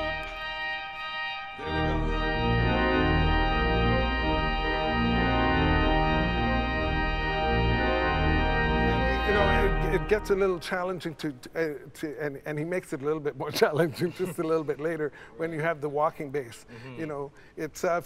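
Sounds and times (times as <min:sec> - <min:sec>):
deep organ pedal bass: 0:00.0 - 0:10.6
organ playing sustained chords: 0:00.0 - 0:11.4.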